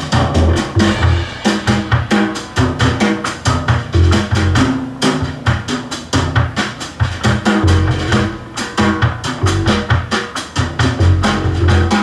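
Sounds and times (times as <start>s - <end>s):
low bass notes: 0.0s - 1.4s, 3.8s - 4.8s, 7.4s - 9.9s, 11.0s - 12.0s
jazz trio playing: 0.0s - 12.0s
snare and cymbal strokes: 0.0s - 12.0s.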